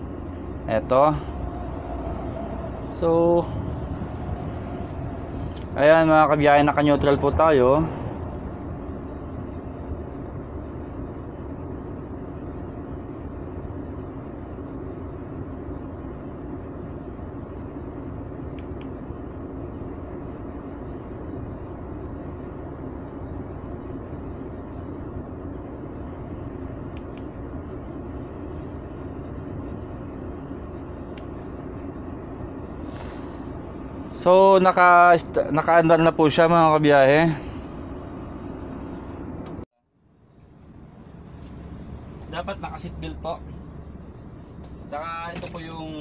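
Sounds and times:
diesel truck engine idling: 0.0 - 46.0.

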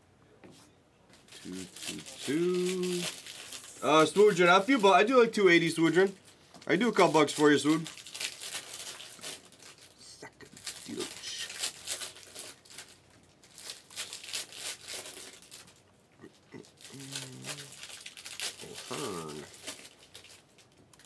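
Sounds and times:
foil wrappers crinkling: 1.1 - 15.9, 16.5 - 21.0.

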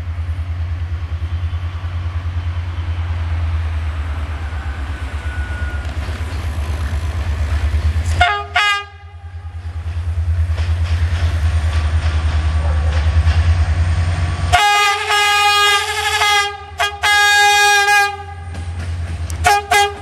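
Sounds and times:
locomotive engine rumbling: 0.0 - 20.0
locomotive air horn blasts: 4.4 - 6.6, 8.1 - 9.6, 14.5 - 18.5, 19.4 - 20.0.

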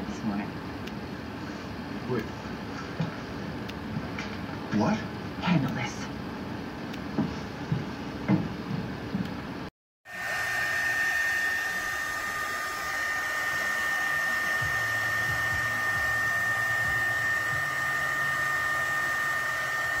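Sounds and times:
high whining fan motor: 0.0 - 20.0
heat gun blowing air: 10.1 - 20.0.

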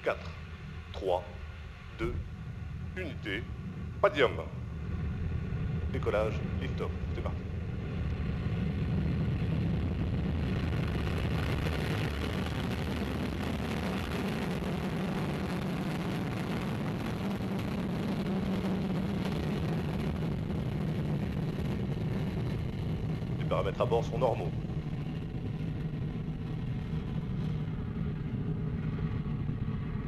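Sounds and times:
rocket engines roaring: 0.0 - 30.0.

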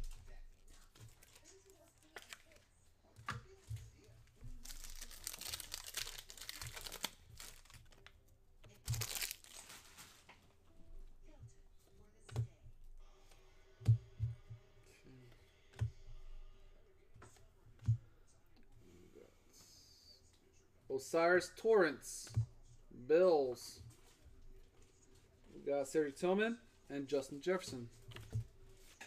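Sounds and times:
card pack wrapper tearing and crinkling: 1.1 - 2.6, 4.6 - 8.1, 8.8 - 10.3.

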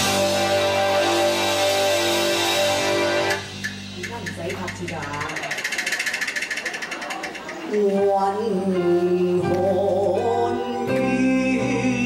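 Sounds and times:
live band playing: 0.0 - 12.0
rapid ticking rhythm: 2.5 - 8.1.

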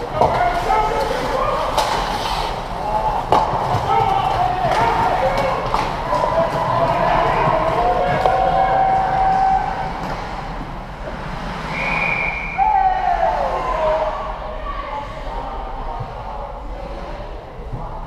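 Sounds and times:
people shouting: 0.0 - 2.0, 2.8 - 10.1, 11.8 - 15.1
high whistle blast: 11.7 - 13.0.

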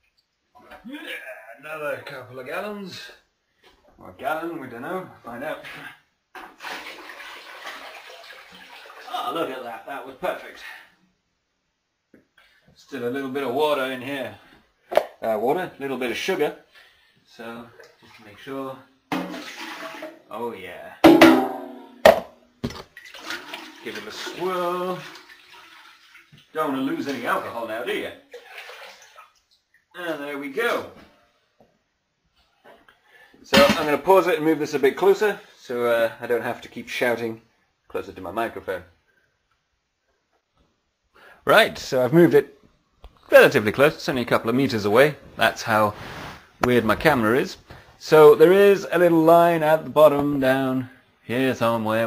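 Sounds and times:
water pouring into plastic bucket: 6.4 - 9.3, 19.1 - 20.3, 22.7 - 29.5.

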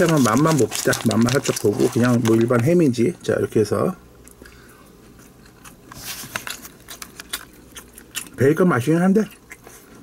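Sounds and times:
person chewing: 4.2 - 8.5, 9.2 - 10.0.

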